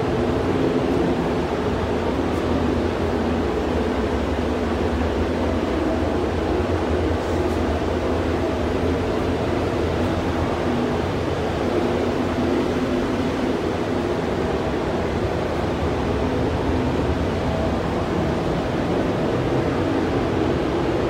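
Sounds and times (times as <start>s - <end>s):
ventilation fans rushing air: 0.0s - 21.0s.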